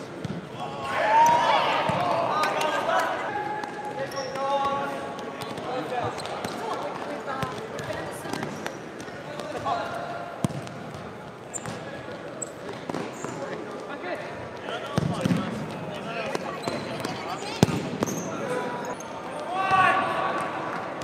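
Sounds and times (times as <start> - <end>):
players shouting and chattering: 0.0 - 21.0
ball kicked and bouncing on court: 0.1 - 0.5, 1.2 - 2.2, 4.6 - 13.9, 14.9 - 18.3.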